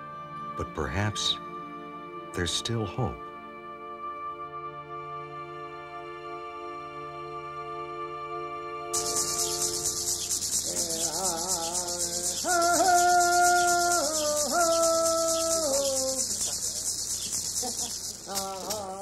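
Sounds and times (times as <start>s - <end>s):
melody of long held notes: 0.0s - 18.3s
gourd rattle shaken rapidly: 9.0s - 19.0s.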